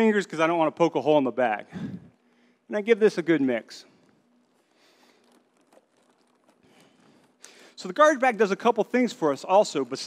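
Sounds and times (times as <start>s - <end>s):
plastic bag crinkling: 4.0s - 7.8s.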